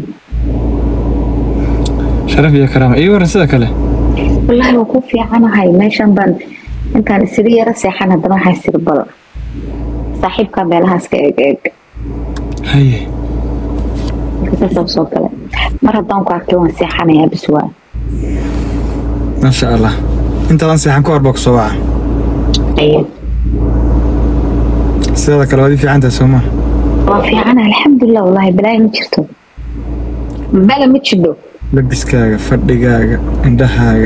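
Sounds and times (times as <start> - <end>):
faint steady tone: 0.0 - 34.0
car cabin hum: 0.2 - 5.6, 6.6 - 7.5, 9.4 - 11.0, 12.0 - 17.2, 18.0 - 27.9, 29.6 - 31.0, 31.6 - 34.0
person speaking: 1.5 - 13.2, 13.8 - 21.9, 25.0 - 29.2, 30.3 - 34.0.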